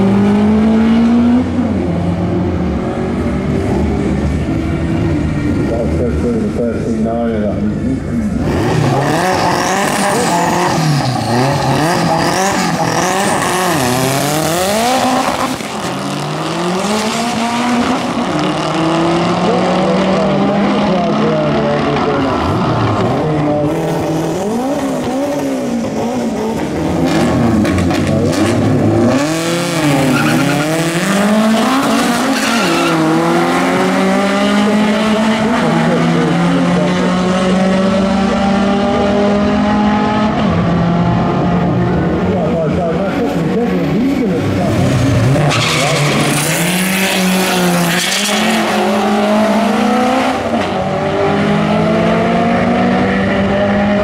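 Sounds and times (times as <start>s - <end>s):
race car engines revving: 0.0s - 54.0s
tyres squealing: 45.3s - 49.0s.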